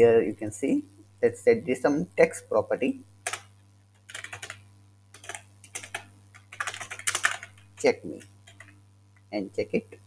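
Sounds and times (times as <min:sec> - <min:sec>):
steady low hum: 0:00.0 - 0:10.0
computer keyboard typing: 0:03.2 - 0:08.8.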